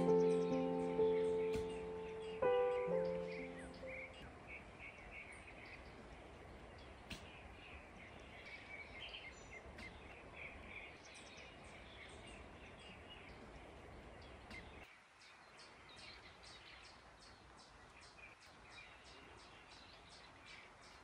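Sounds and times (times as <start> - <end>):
birds chirping: 0.0 - 21.0.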